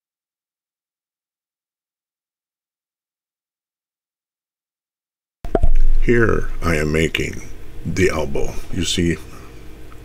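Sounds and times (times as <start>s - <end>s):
man talking: 6.0s - 9.5s.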